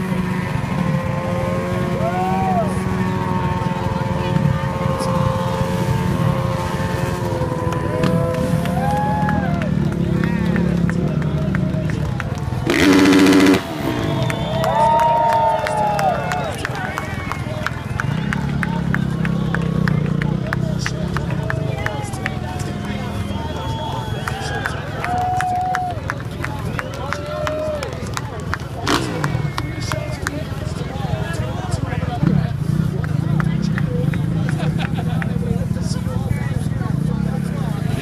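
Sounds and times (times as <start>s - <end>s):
crowd chatter: 0.0s - 38.0s
motor engines revving: 0.0s - 38.0s.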